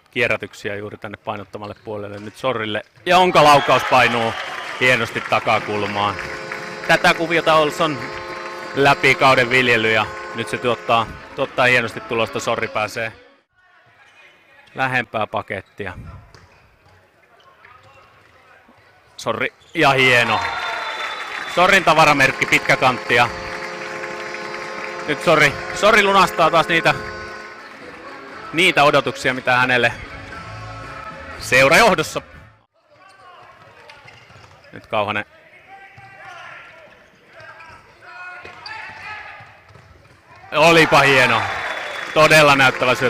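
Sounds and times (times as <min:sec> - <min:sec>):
quiet hall background: 0:00.0 - 0:43.0
shoes squeaking on court floor: 0:01.4 - 0:04.4, 0:15.4 - 0:25.0, 0:32.9 - 0:35.0, 0:35.9 - 0:42.0
players calling out: 0:03.1 - 0:13.0, 0:19.7 - 0:31.3, 0:40.4 - 0:43.0.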